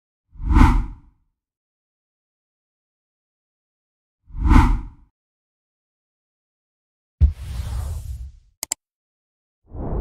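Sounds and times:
whoosh sound effect: 7.2 - 8.5.

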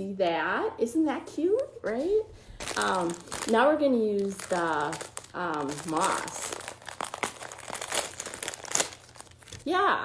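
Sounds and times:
plastic bag crinkling: 2.5 - 9.8.

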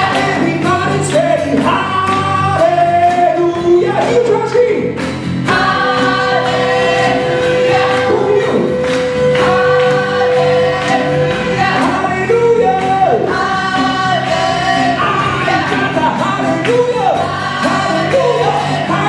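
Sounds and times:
acoustic guitar: 0.0 - 19.0
people singing: 0.0 - 19.0.

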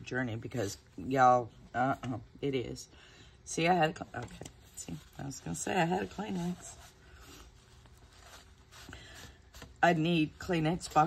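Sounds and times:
paper and tissue rustling: 3.8 - 11.0.

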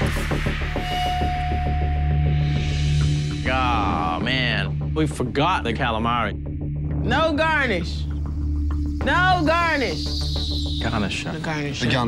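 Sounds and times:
fast throbbing pulse: 8.1 - 12.0.

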